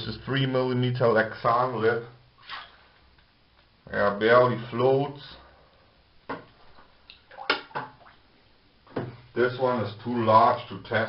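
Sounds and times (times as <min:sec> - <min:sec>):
splashes in bathtub water: 0:02.4 - 0:02.9, 0:07.1 - 0:08.3.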